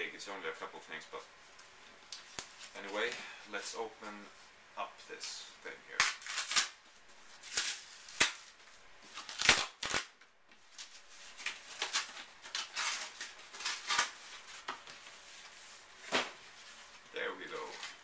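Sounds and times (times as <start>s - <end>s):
cardboard mailer being torn open: 6.0s - 6.8s, 9.2s - 10.1s.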